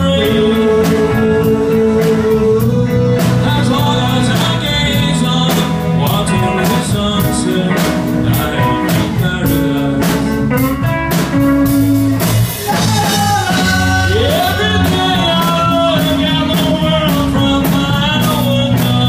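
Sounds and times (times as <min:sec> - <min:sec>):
person singing: 0:00.0 - 0:11.0, 0:12.2 - 0:19.0
drum kit beat: 0:00.0 - 0:19.0
guitar: 0:00.0 - 0:19.0.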